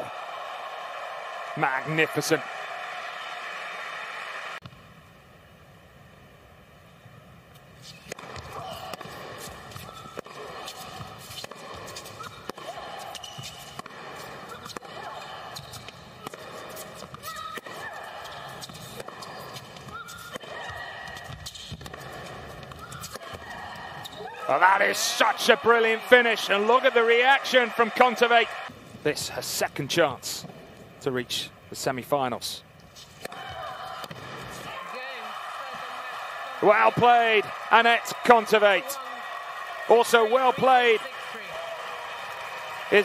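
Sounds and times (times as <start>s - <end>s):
shoe squeaks: 9.7s - 12.4s, 13.0s - 13.8s, 18.6s - 23.2s
arena background: 24.4s - 30.3s.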